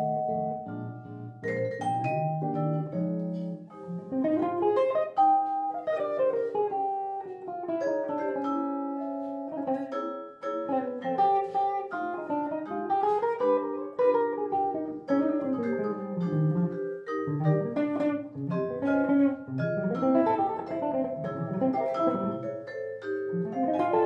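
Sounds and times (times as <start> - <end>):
vibraphone ringing: 0.0 - 6.6, 7.6 - 24.0.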